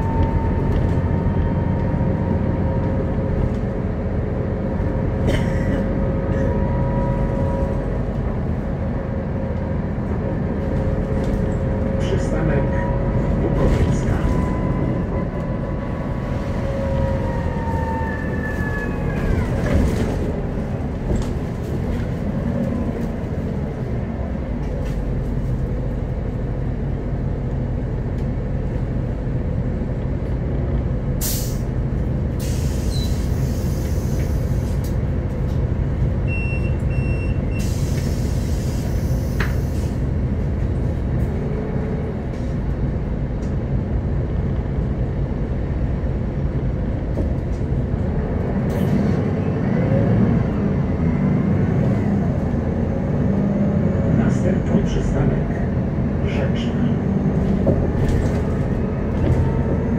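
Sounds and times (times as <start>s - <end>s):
bus diesel engine running: 0.0s - 59.9s
tyre and road noise: 0.0s - 59.9s
short beep: 36.3s - 37.6s.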